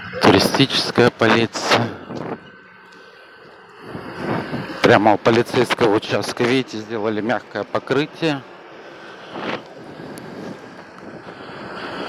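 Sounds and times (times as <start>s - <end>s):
traffic going by: 0.0s - 12.0s.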